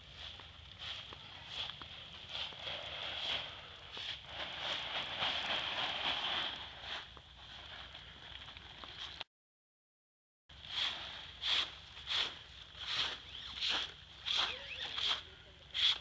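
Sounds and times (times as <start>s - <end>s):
nylon tent fabric rustling: 0.0s - 9.2s, 10.5s - 15.3s.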